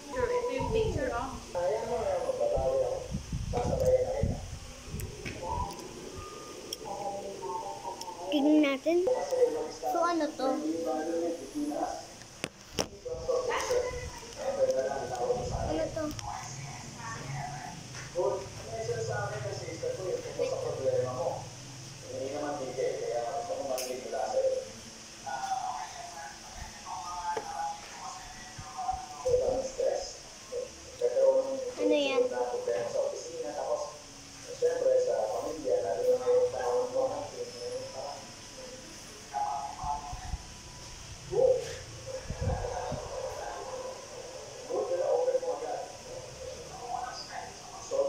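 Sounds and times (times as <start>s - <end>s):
child making wordless sounds: 9.9s - 10.7s.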